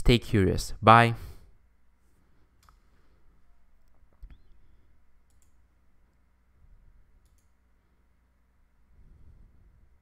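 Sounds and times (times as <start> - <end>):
low steady hum: 0.0 - 10.0
faint computer clicks: 5.2 - 5.6, 7.2 - 7.6.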